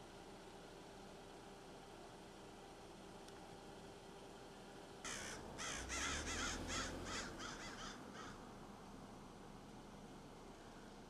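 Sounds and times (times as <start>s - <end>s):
bird harsh caw-like calls: 5.0s - 8.6s.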